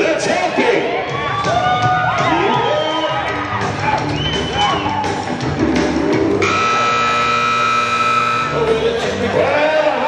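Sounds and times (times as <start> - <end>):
arena buzzer steady tone: 6.4 - 8.8.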